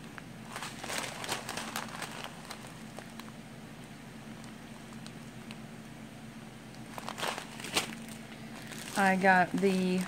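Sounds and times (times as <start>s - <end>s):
plastic bag crinkling: 0.1s - 3.4s, 6.7s - 10.0s.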